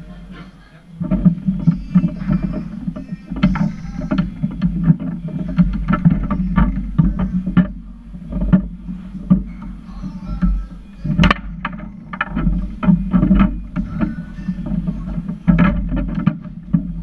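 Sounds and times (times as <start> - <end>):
ball clacking off plastic figures: 1.0 - 17.0
ball rolling on foosball table: 1.0 - 17.0
foosball rods knocking: 1.0 - 17.0.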